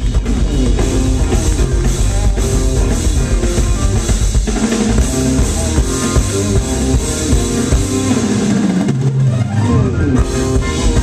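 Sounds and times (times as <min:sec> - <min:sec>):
drum kit: 0:00.0 - 0:11.0
electric bass: 0:00.0 - 0:11.0
electric guitar: 0:00.0 - 0:11.0
keyboards: 0:00.0 - 0:11.0.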